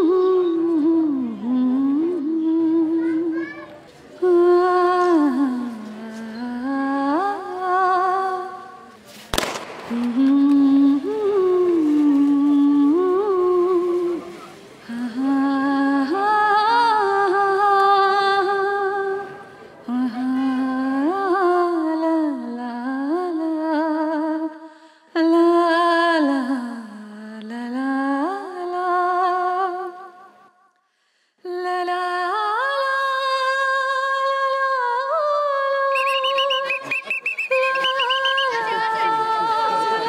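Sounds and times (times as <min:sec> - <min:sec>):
person humming a melody: 0:00.0 - 0:03.2.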